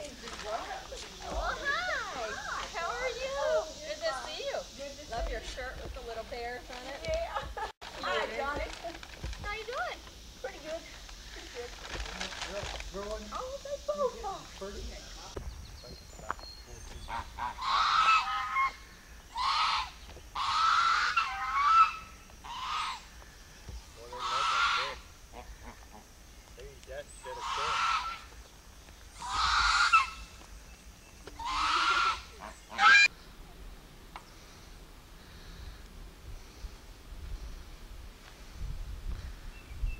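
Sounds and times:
geese honking: 0:17.0 - 0:26.2, 0:27.2 - 0:28.4, 0:29.1 - 0:30.5, 0:31.2 - 0:33.2.

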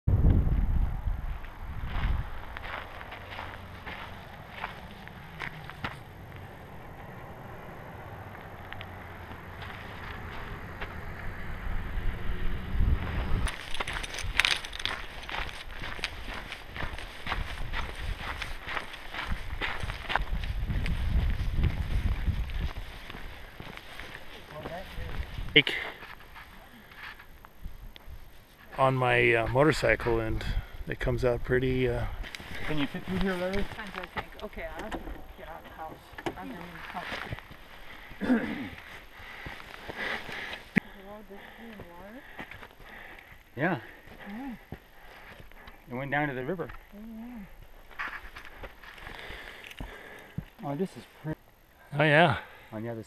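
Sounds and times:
wind buffeting microphone: 0:00.1 - 0:02.8, 0:11.0 - 0:23.8
footsteps on pavement and gravel: 0:01.4 - 0:06.6, 0:08.2 - 0:11.0, 0:13.4 - 0:30.2, 0:32.1 - 0:34.8, 0:35.5 - 0:45.9, 0:46.6 - 0:51.2.

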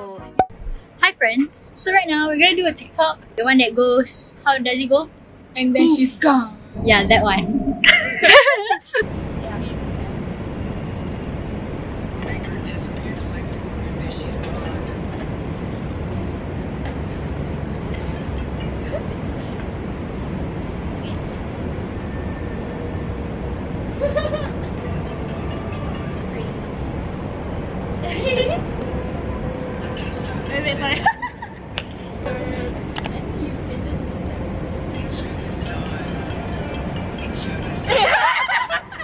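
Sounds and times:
city background rumble: 0:00.0 - 0:39.0.

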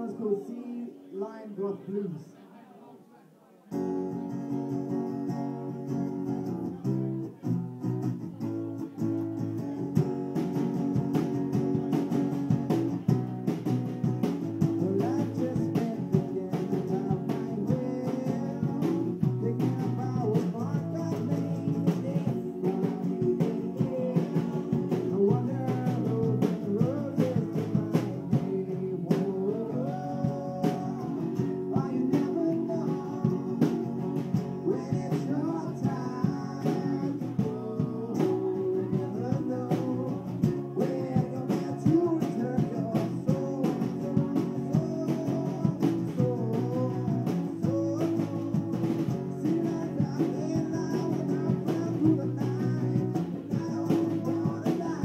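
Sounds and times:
guitar chords: 0:03.7 - 0:55.0
person singing: 0:14.7 - 0:55.0.

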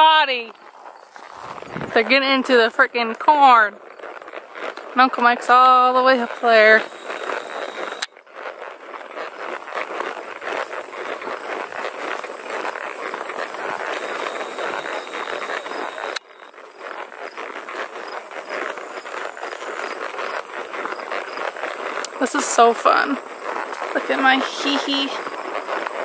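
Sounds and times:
horse walking on gravel: 0:00.0 - 0:26.0
faint insect chirping: 0:04.7 - 0:08.0, 0:11.5 - 0:21.6.

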